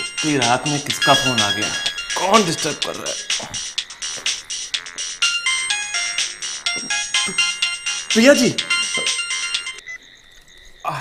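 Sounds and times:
clicking beat: 0.0s - 9.8s
electronic ringtone melody: 0.0s - 10.0s.

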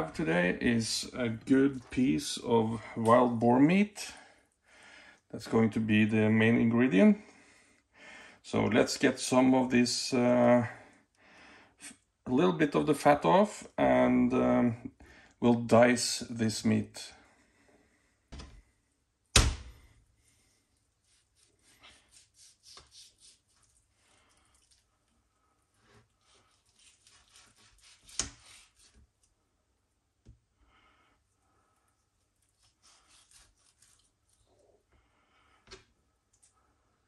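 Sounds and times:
knife slicing meat: 21.0s - 23.8s, 25.8s - 29.1s, 32.4s - 34.4s.

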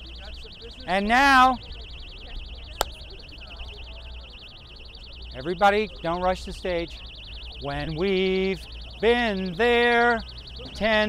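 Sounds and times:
warbling electronic alarm: 0.1s - 11.0s.

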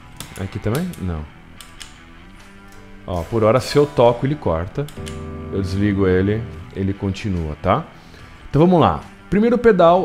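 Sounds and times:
electric guitar note ringing: 3.5s - 7.4s.

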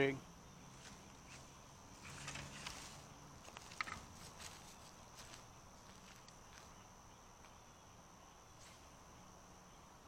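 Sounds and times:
faint high insect buzz: 0.0s - 10.0s
fishing rod ticks and rustles: 2.0s - 6.7s.

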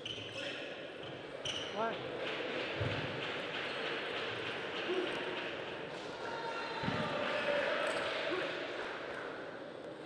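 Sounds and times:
shoe squeaking on floor: 0.0s - 2.0s.

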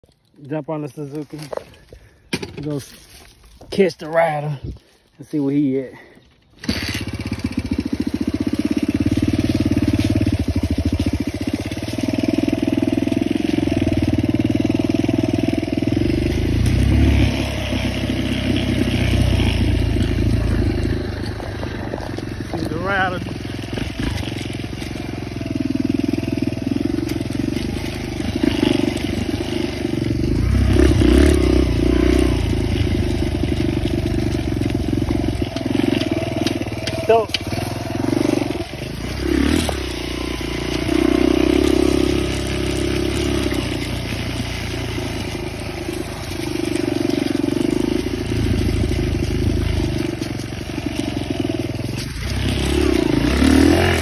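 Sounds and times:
dirt bike engine revving: 5.6s - 54.0s.

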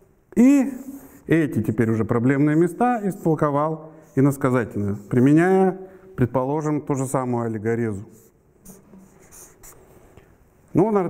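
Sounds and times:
marker pen scratching on paper: 0.6s - 5.7s, 8.0s - 10.1s.

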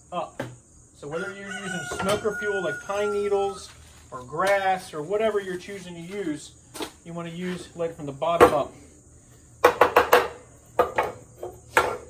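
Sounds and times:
metallic clanks and knocks: 9.6s - 12.0s.

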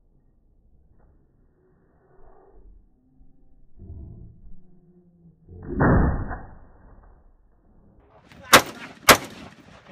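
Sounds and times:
rifle shot: 8.3s - 9.9s.

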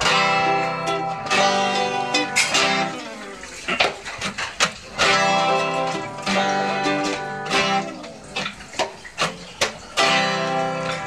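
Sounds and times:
acoustic guitars playing: 0.0s - 11.0s.

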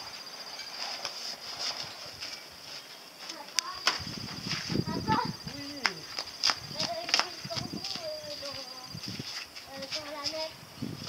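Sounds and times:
person talking: 4.8s - 6.1s, 6.7s - 9.0s.

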